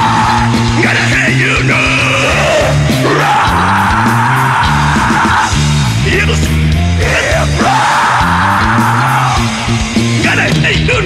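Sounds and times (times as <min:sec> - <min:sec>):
shouted vocal: 0:00.0 - 0:10.6
rap-rock band playing: 0:00.0 - 0:11.0.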